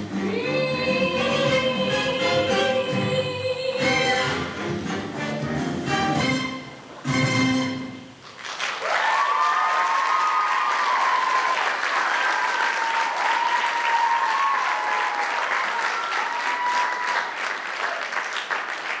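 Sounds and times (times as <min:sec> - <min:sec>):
audience applauding: 0:08.2 - 0:19.0.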